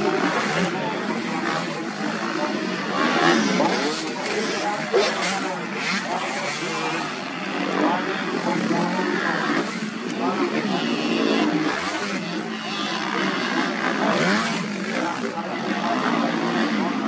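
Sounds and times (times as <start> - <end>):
dirt bike engines revving: 0.0 - 17.0.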